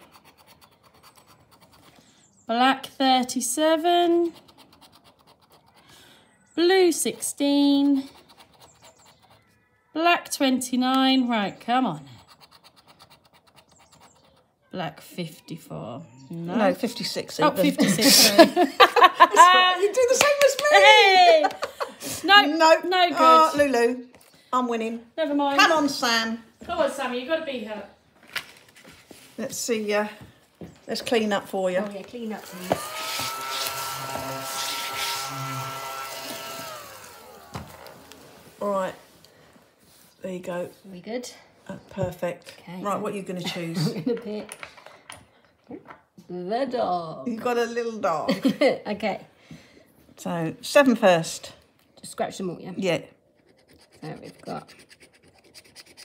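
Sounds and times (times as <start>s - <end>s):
plastic chip scratching a scratchcard: 0.0s - 2.0s, 4.2s - 5.8s, 7.1s - 9.5s, 12.2s - 14.6s, 53.4s - 56.0s
hand vacuum whining: 32.0s - 38.9s.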